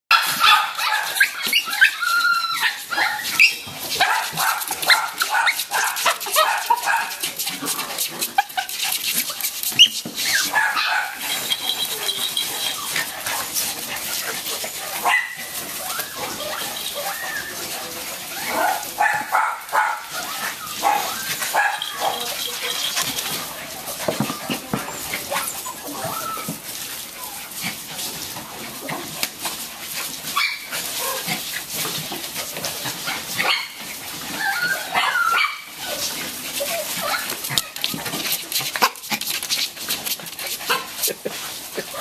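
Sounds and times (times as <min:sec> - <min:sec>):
paws scratching paper bedding: 0:00.1 - 0:42.0
puppies yapping and whining: 0:00.1 - 0:42.0.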